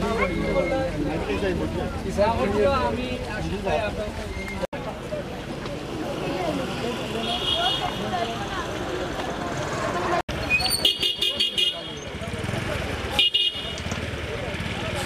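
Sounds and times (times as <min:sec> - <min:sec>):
crowd talking: 0:00.0 - 0:15.0.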